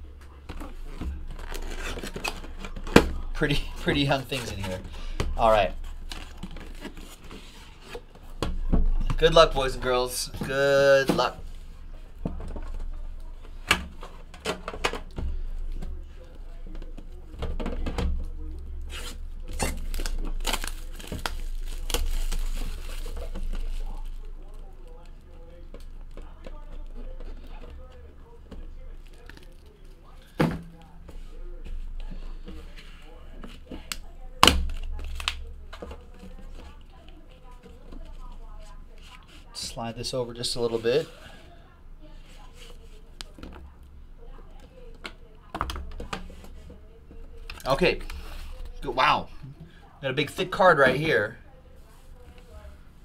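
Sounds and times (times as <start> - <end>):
plastic shrink wrap tearing: 1.3 - 3.0, 18.9 - 25.1.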